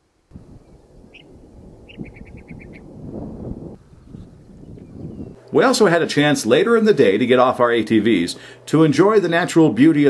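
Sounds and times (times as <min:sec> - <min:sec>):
small bird calling: 0:00.6 - 0:02.9, 0:04.2 - 0:05.4.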